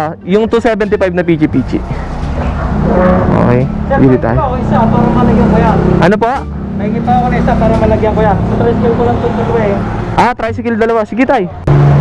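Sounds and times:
motorcycle traffic engine hum: 0:00.0 - 0:10.2
voices talking: 0:00.0 - 0:11.7.

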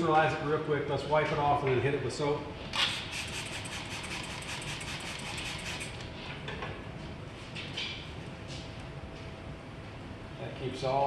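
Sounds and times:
spray bottle hissing sprays: 0:03.0 - 0:05.9.

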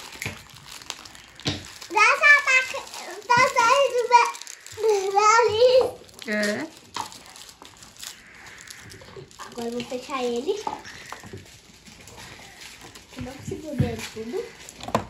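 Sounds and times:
young children talking: 0:01.9 - 0:06.7, 0:09.4 - 0:11.3.

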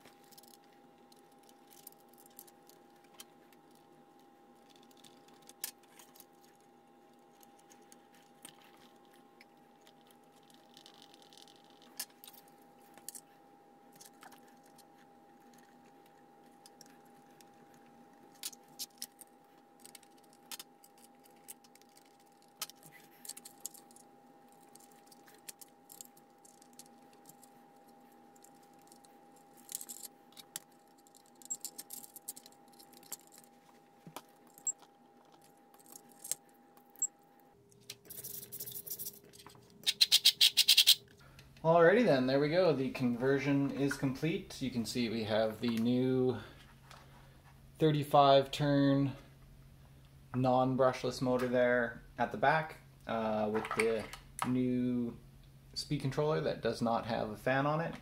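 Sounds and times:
faint steady hum: 0:00.0 - 0:58.0.

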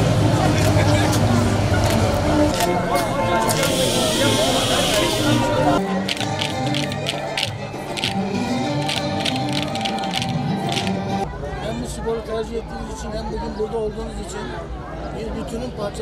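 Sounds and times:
crowd voices: 0:00.0 - 0:16.0
folk dance music: 0:00.5 - 0:11.3
wooden spoons clicking: 0:06.0 - 0:11.0.

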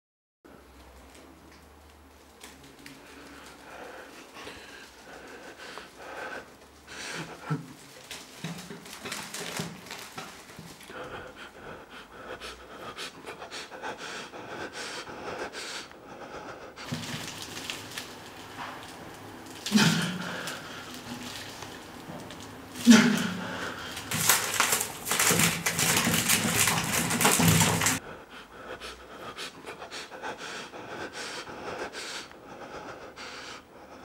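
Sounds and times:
person breathing heavily: 0:03.0 - 0:17.3, 0:19.6 - 0:34.0.

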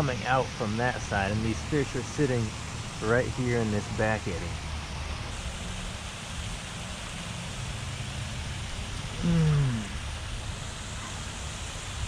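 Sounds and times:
water rushing from drainage tunnel: 0:00.0 - 0:09.2.

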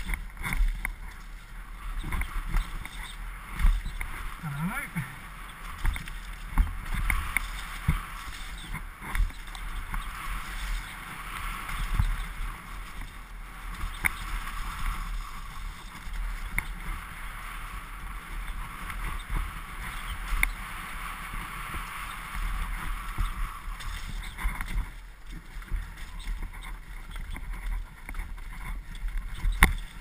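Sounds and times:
sharp clicks from bike: 0:00.0 - 0:04.3, 0:05.4 - 0:17.2, 0:18.4 - 0:30.0
tyre noise on dirt trail: 0:00.0 - 0:30.0.

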